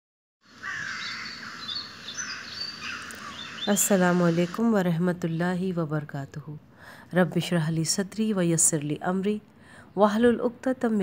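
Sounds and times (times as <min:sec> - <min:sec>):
birds chirping: 0:00.4 - 0:06.4.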